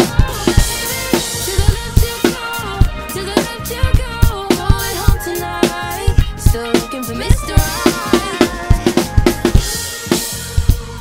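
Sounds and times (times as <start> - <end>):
bass drum and snare strokes: 0.0 - 11.0
pop backing track: 0.0 - 11.0.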